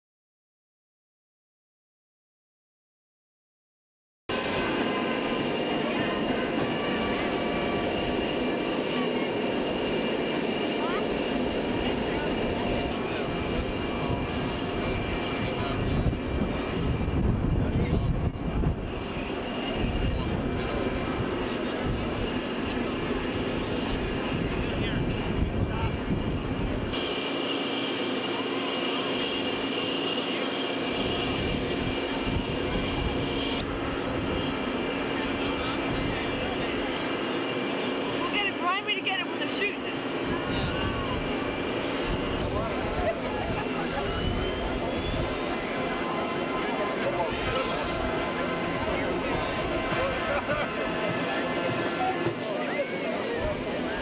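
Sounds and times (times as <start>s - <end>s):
aircraft engine with whine: 4.3s - 54.0s
crowd voices: 4.3s - 54.0s.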